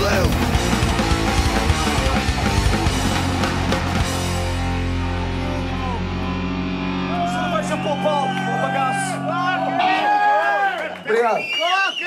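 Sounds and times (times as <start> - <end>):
drum kit: 0.0 - 10.3
loud electric guitars: 0.0 - 11.1.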